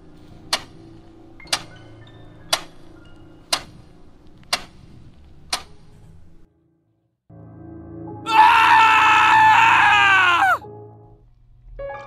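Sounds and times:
person screaming: 8.3s - 10.6s.

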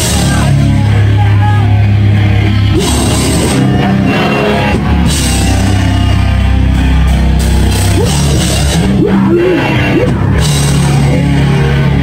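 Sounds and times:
heavy rock band playing live: 0.0s - 12.0s.

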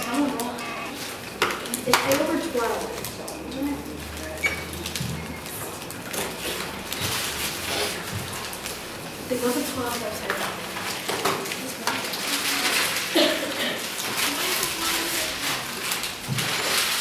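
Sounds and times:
students chattering: 0.0s - 16.4s
paper crinkling: 0.0s - 17.0s.

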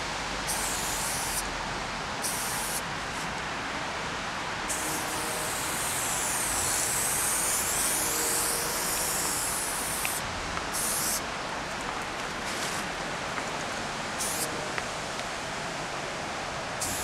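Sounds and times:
spray paint can hissing: 0.5s - 1.5s, 2.2s - 3.2s, 4.7s - 11.2s, 14.2s - 14.5s, 16.8s - 17.0s
background hiss: 4.7s - 11.2s.

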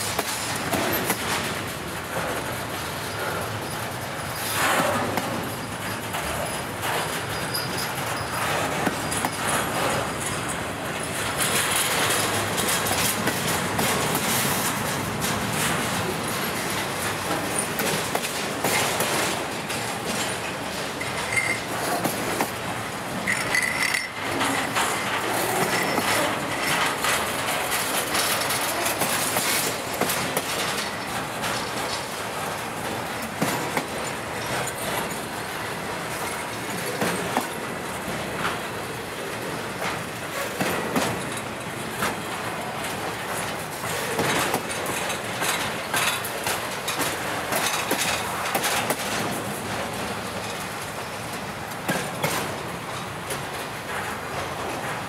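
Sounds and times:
freight train rumble and wheel clatter: 0.0s - 55.0s
sharp clicks of rail wheels: 0.0s - 55.0s.

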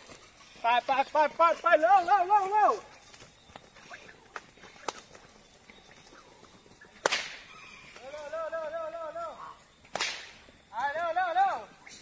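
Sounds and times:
whip crack: 7.0s - 7.5s, 9.8s - 10.5s
man chanting calls: 8.0s - 9.6s.

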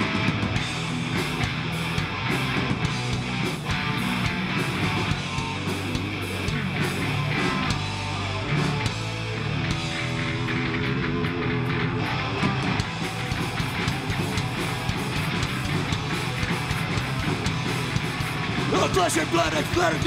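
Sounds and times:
distorted electric guitars: 0.0s - 20.0s
pounding drums: 12.1s - 20.0s.

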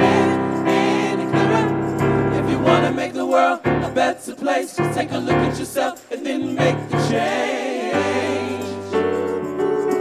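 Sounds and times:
gospel group singing in harmony: 0.0s - 10.0s.

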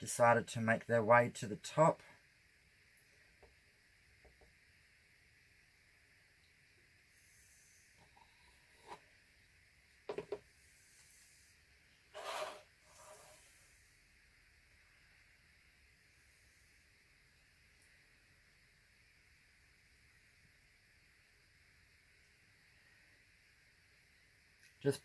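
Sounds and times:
rustling scrape: 12.1s - 13.6s.

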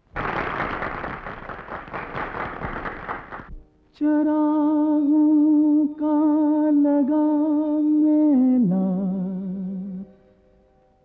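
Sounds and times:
people applauding: 0.0s - 3.5s.

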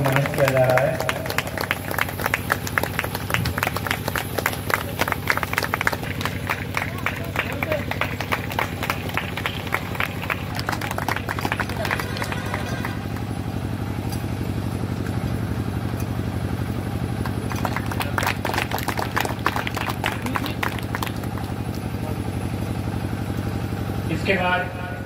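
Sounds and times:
small group applauding: 0.0s - 13.4s, 17.1s - 22.6s
steady low hum: 0.0s - 25.0s.

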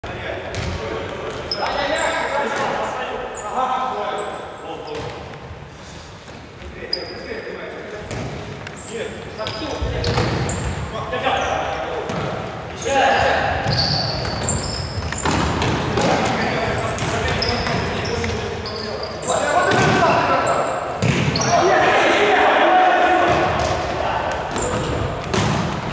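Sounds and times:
sports shoes squeaking: 0.5s - 5.4s, 6.2s - 22.0s, 23.2s - 25.9s
players calling out: 12.8s - 25.9s
ball struck and bouncing: 21.0s - 21.4s, 23.3s - 25.9s
people shouting: 21.4s - 25.0s.

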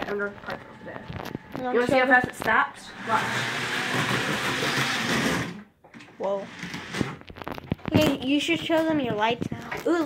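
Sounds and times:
model train motor whirring: 3.0s - 5.6s.

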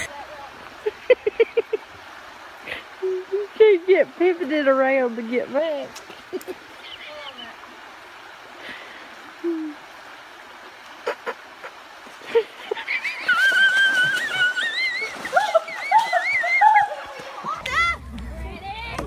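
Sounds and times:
person splashing into pond: 13.0s - 18.1s.

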